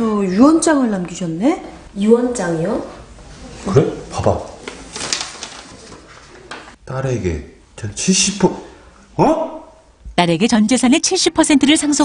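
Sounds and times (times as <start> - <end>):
paper rustling: 4.2 - 6.8.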